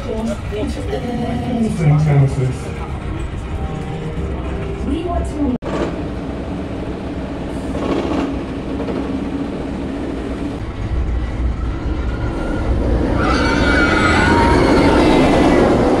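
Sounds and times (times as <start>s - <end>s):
roller coaster rumble on track: 0.0s - 16.0s
high squeal from wheels: 11.6s - 15.8s.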